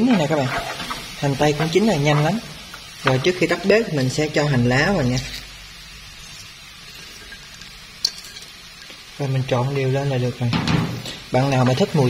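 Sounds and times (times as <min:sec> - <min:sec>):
noodles sizzling in a pan: 0:00.0 - 0:12.0.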